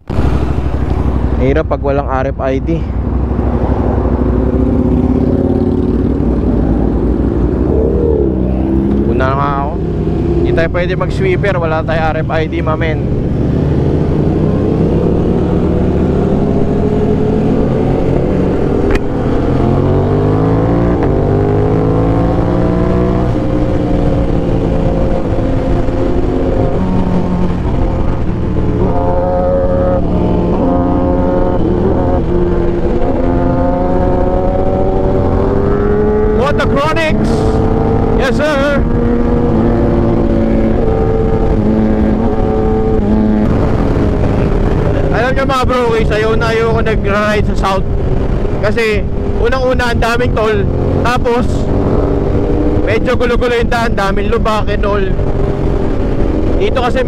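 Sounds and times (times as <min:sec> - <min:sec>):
motorcycle engine accelerating: 0:00.0 - 0:57.0.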